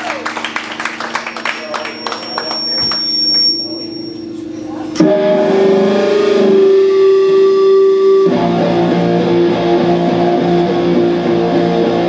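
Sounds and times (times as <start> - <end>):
electric guitar ringing notes: 0.0 - 12.0
live rock band playing: 5.0 - 12.0.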